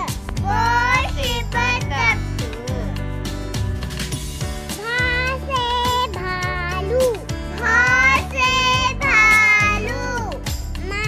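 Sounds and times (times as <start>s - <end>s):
backing music with steady beat: 0.0s - 11.0s
child singing: 0.4s - 2.2s, 4.8s - 11.0s.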